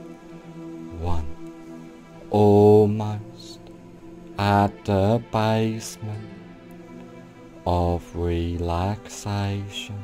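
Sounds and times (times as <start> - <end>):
soft meditation music with drones: 0.0 - 10.0
man chanting long syllable: 0.9 - 1.4, 2.2 - 3.7, 4.4 - 6.3, 7.6 - 10.0.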